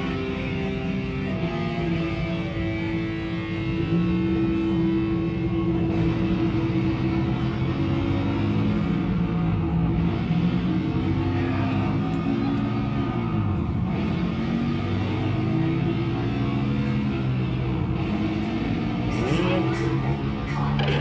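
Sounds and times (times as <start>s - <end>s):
heavy metal band playing live: 0.0s - 21.0s.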